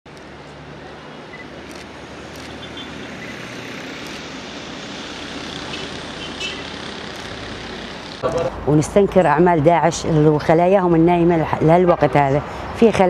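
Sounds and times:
road traffic passing: 0.1s - 13.0s.

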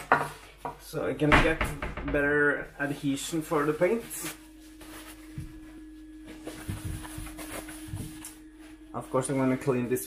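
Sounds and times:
steady hum: 0.1s - 10.0s.

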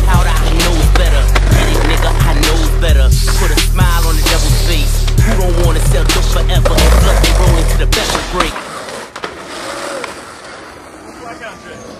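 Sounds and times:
music with heavy bass beat: 0.0s - 8.5s
skateboard wheels rolling on pavement: 0.0s - 11.9s
skateboard clacks and knocks: 6.6s - 10.8s.

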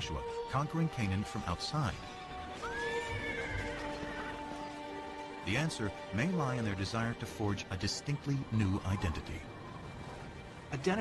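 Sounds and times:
background music: 0.0s - 11.0s
horse whinnying: 2.6s - 4.8s.

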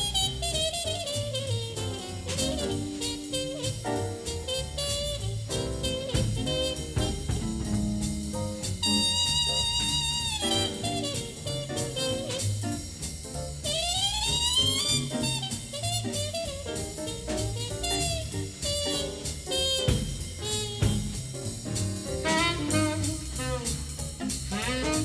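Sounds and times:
bass: 0.0s - 25.0s
drums: 0.0s - 25.0s
jazz horn solo: 0.0s - 25.0s.

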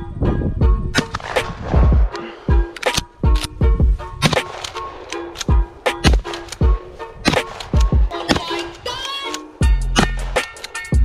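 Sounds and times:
shotgun shot: 1.0s - 2.1s.

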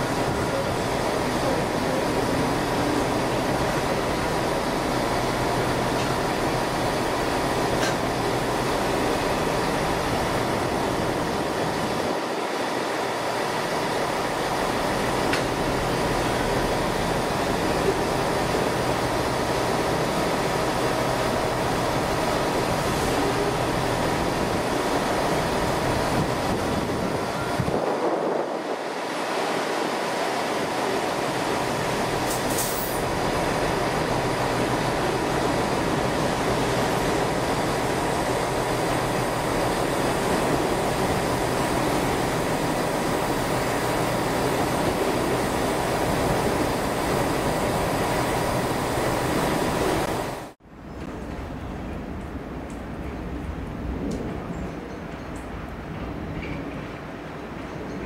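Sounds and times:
freight train wagons rolling on rails: 0.0s - 58.0s.

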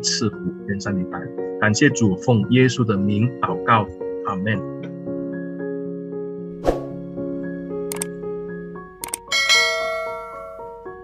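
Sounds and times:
gentle keyboard music: 0.0s - 11.0s
sharp click sound effect: 7.9s - 8.1s, 9.0s - 9.2s
notification bell ding: 9.4s - 10.7s.

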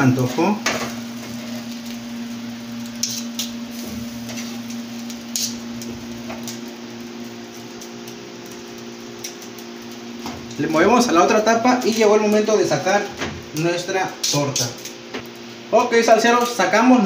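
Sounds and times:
steady low hum: 0.0s - 17.0s
metal utensils clicking on griddle: 2.8s - 3.6s, 4.3s - 5.6s.

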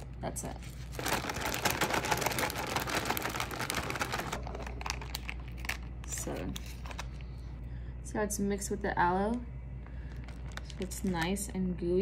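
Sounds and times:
chip bag crinkling: 0.0s - 7.2s, 10.0s - 11.5s.

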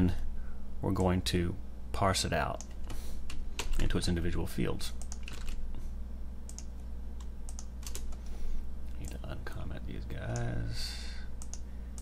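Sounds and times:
computer keyboard typing: 5.0s - 5.6s, 6.5s - 8.2s.

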